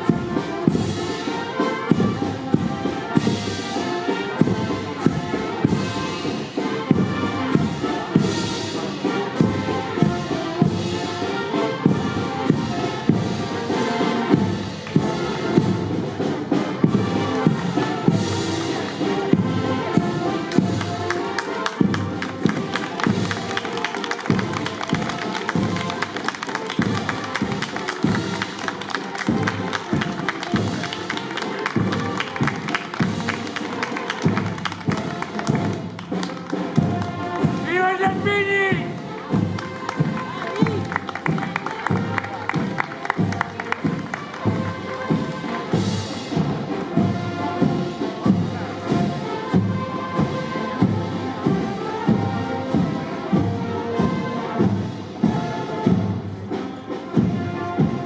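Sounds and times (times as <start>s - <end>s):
brass band playing a march: 0.0s - 58.0s
bass drum beat: 19.4s - 45.4s.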